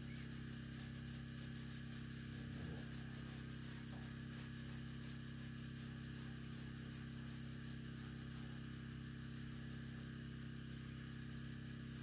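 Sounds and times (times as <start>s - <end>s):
pad rubbing on textured metal: 0.0s - 12.0s.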